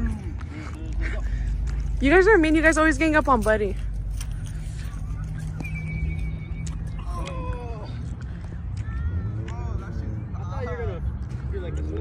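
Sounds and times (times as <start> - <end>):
steady low rumble: 0.0 - 12.0
people calling out: 5.0 - 10.2.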